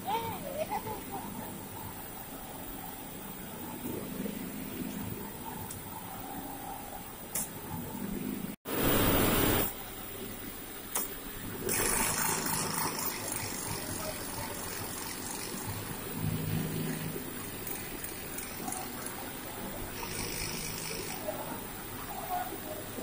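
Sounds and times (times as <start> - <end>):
loud burst of hiss: 8.7 - 9.8
yarn machine humming: 11.4 - 23.0.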